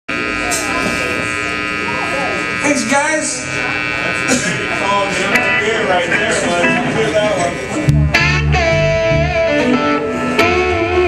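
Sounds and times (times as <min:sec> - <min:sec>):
faint voices: 0:00.1 - 0:11.0
guitar amplifiers humming: 0:00.1 - 0:11.0.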